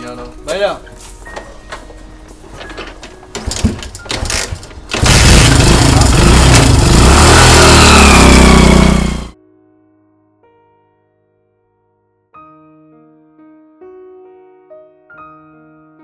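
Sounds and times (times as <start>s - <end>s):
scooter engine starting and running: 3.5s - 9.4s.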